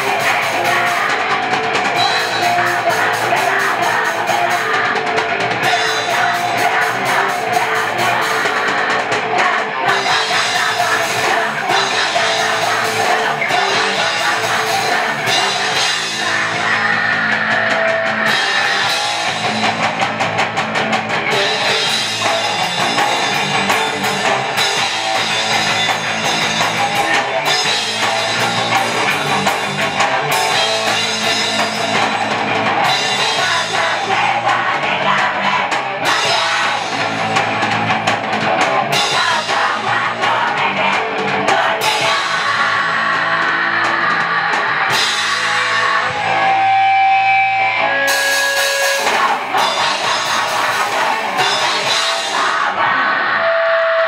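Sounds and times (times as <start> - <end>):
vocalist singing: 0.0 - 19.8, 21.2 - 54.0
drum kit: 0.0 - 53.2
bass guitar: 0.0 - 54.0
distorted electric guitars: 0.0 - 54.0.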